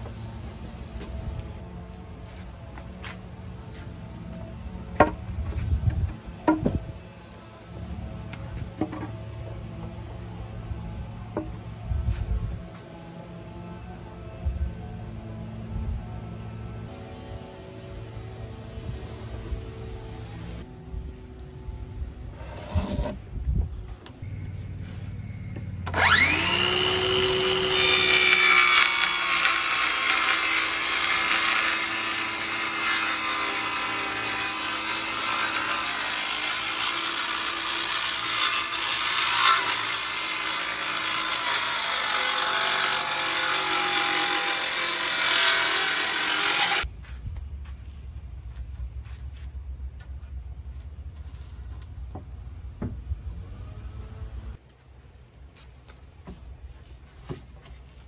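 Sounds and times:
circular saw cutting wood: 0:22.3 - 0:23.2, 0:24.7 - 0:46.9.

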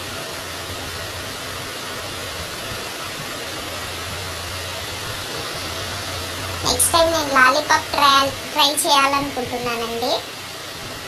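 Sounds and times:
low hum: 0:00.0 - 0:11.0
rushing background noise: 0:00.0 - 0:11.0.

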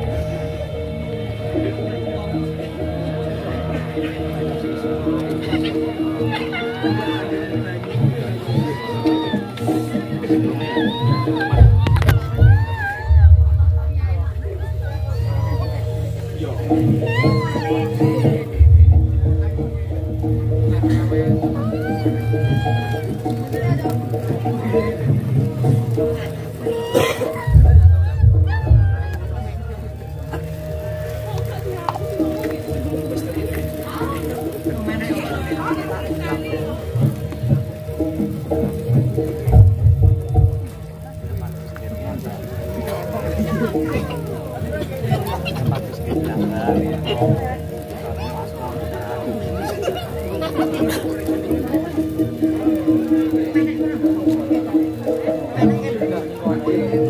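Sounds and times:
crowd voices: 0:00.0 - 0:57.0
gamelan music: 0:00.0 - 0:57.0
low rumble: 0:11.5 - 0:17.1, 0:18.5 - 0:22.0, 0:27.5 - 0:31.4.

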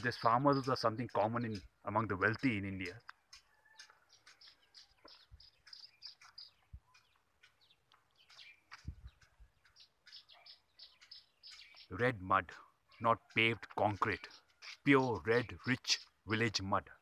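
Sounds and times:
bird chirping: 0:00.0 - 0:17.0.

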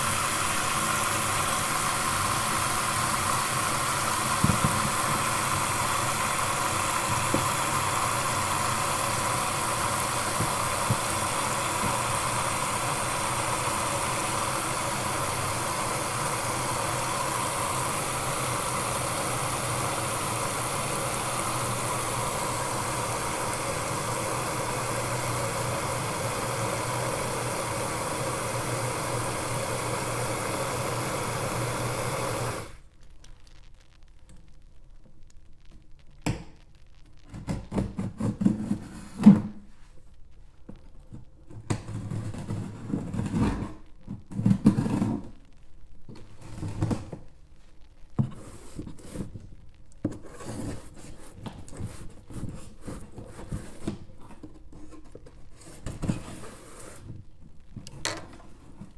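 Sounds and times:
faucet spray into sink: 0:00.0 - 0:32.8.

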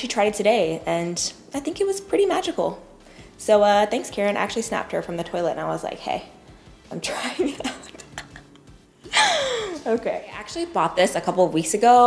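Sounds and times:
woman's breathy laughing exclamation: 0:09.1 - 0:09.8.

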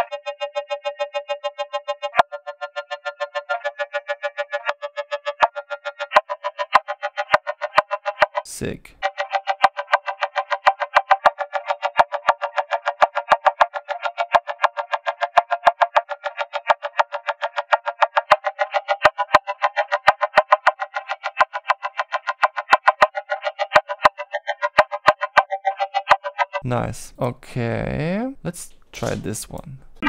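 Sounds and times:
rapid pulsing synth: 0:00.0 - 0:08.4, 0:09.0 - 0:26.6.

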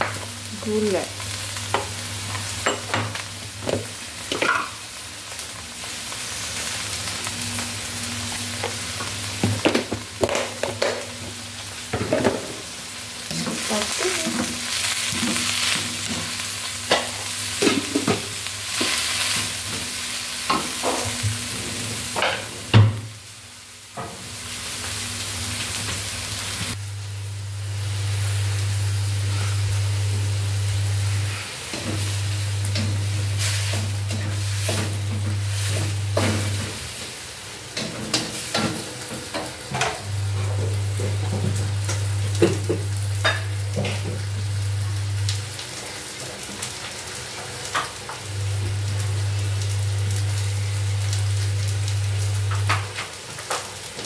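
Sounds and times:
bean sprouts sizzling in a pan: 0:00.0 - 0:54.0.

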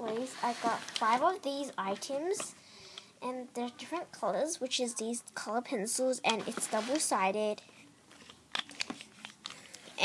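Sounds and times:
pencils clicking together: 0:08.2 - 0:09.8.

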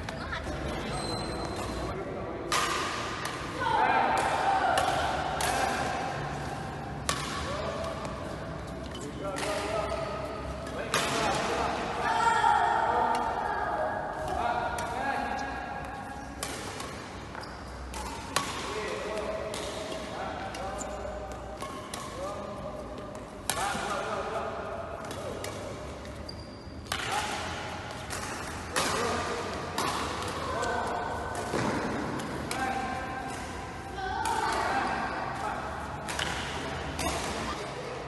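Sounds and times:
voices echoing in a hall: 0:00.0 - 0:16.3, 0:27.0 - 0:38.0.

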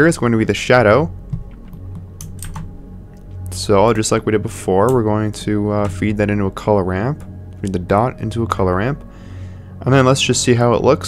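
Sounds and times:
computer keyboard keystrokes: 0:01.3 - 0:02.7.

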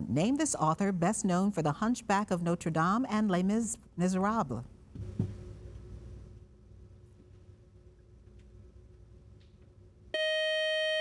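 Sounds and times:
quiz buzzer tone: 0:10.2 - 0:11.0.

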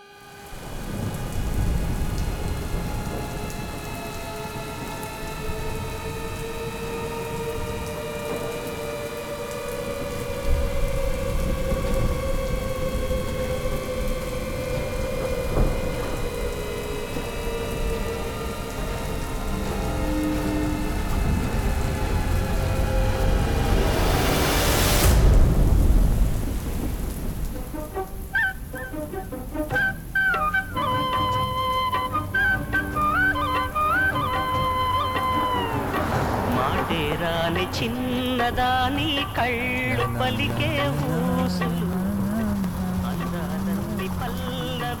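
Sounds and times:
drone of held tones: 0:00.0 - 0:25.2, 0:29.7 - 0:36.5
heavy rain: 0:00.0 - 0:45.0
thunder cracks: 0:00.6 - 0:29.4, 0:32.4 - 0:45.0.

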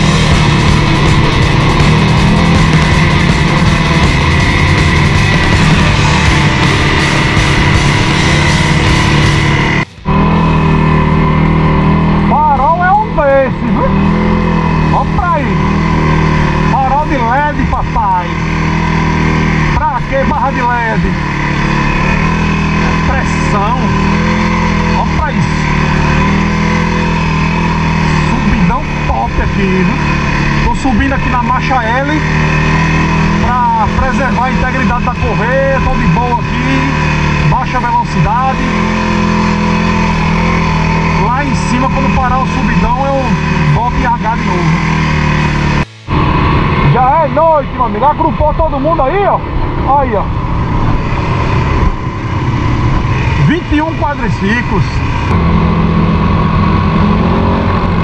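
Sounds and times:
quad bike engine running: 0:00.0 - 0:58.0.

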